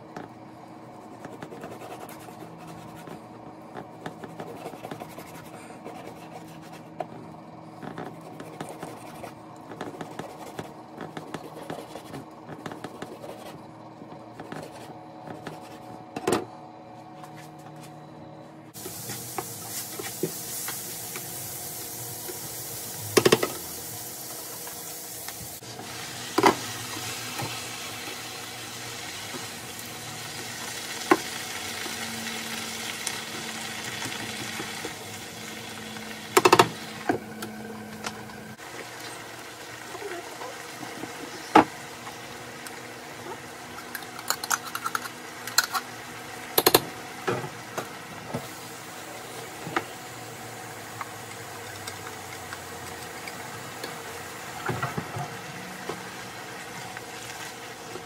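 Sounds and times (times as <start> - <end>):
food sizzling in a frying pan: 18.8 - 36.9.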